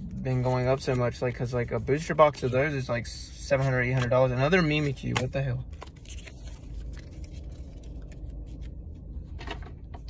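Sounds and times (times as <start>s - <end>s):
low steady rumble: 0.0s - 10.0s
trading cards shuffling: 3.5s - 9.3s.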